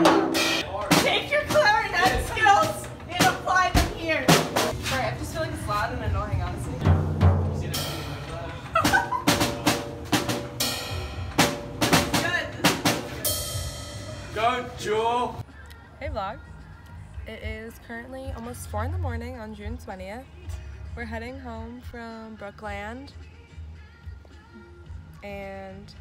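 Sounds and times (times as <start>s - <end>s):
bass drum and snare strokes: 0.0s - 5.1s, 6.8s - 14.5s.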